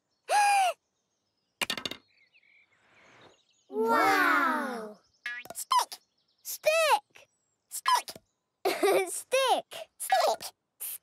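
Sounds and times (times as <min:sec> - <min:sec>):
wooden clatter: 0:01.6 - 0:02.1.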